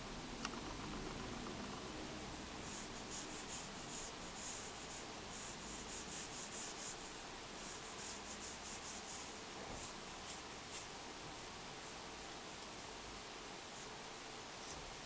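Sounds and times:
pencil scratching on paper: 2.6s - 10.9s.

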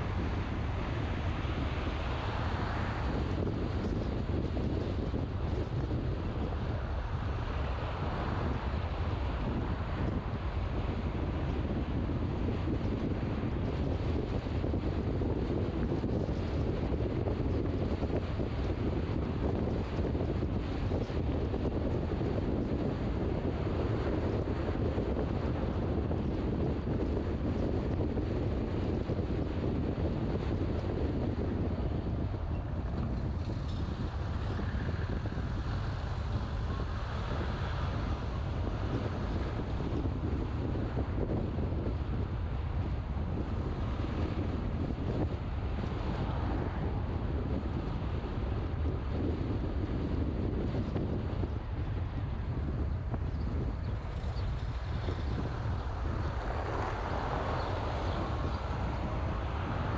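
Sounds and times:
car road noise: 0.0s - 59.9s
wind on microphone: 0.0s - 59.9s.

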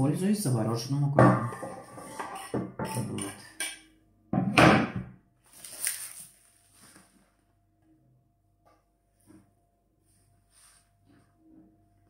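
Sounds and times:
knife scraping cutting board: 1.5s - 3.7s.

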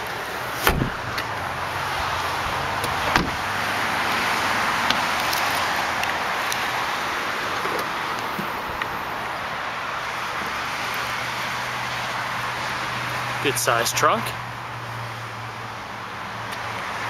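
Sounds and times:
car door thumping shut: 0.6s - 1.2s, 3.0s - 3.4s.

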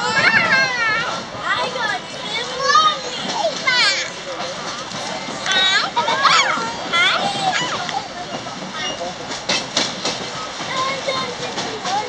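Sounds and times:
railcar rumble and rattle: 0.0s - 12.0s
sharp knocks from rails: 9.3s - 12.0s.

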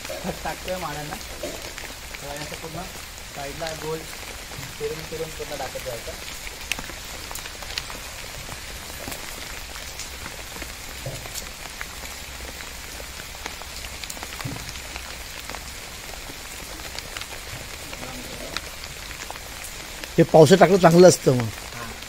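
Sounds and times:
raindrops ticking: 0.0s - 22.0s
steady rain hiss: 0.0s - 22.0s.

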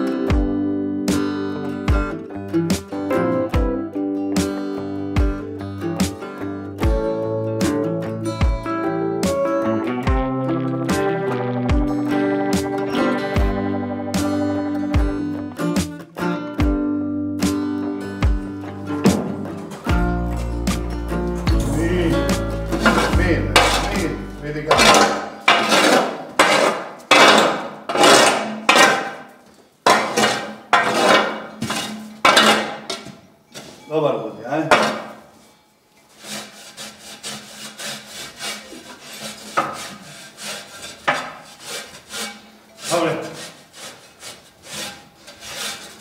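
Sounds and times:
stiff brush scrubbing hide: 21.6s - 28.4s, 36.1s - 46.0s
metal shovel clanking on concrete: 22.7s - 35.6s.

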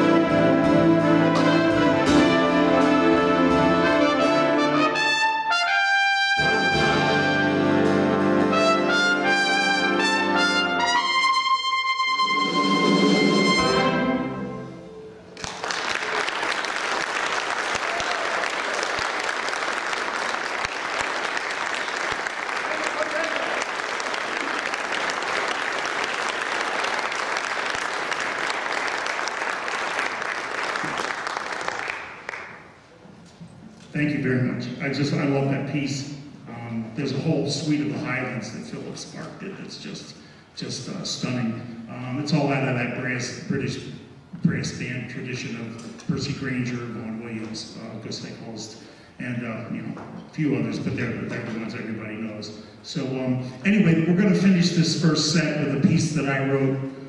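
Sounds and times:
big band closing chords: 0.0s - 15.5s
audience applause: 15.4s - 32.8s.

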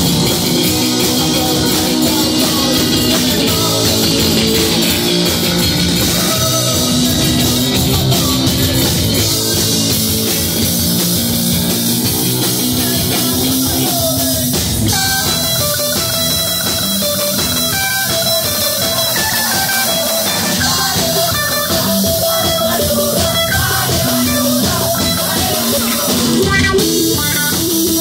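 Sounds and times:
live rock band playing: 0.0s - 28.0s.

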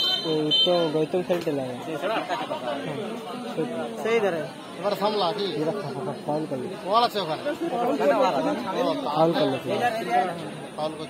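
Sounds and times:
people talking over one another: 0.0s - 11.0s.

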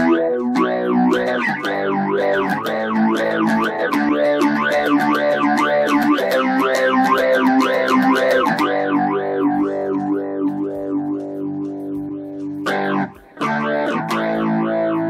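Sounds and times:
electric guitar chords with phaser: 0.0s - 15.0s.

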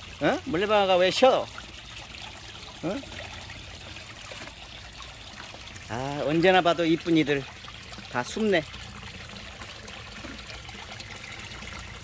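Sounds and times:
water trickling into pond: 0.0s - 12.0s.

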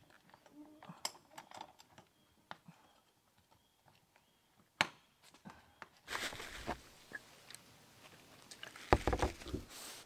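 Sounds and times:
hands rustling: 6.0s - 10.0s.

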